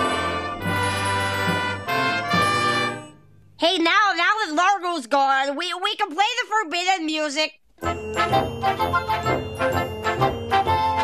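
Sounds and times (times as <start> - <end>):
brass and woodwind band chords: 0.0 - 3.2, 7.8 - 11.0.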